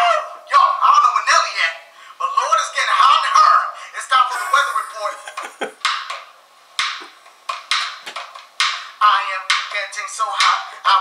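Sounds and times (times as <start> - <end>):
man laughing: 4.3 - 5.8.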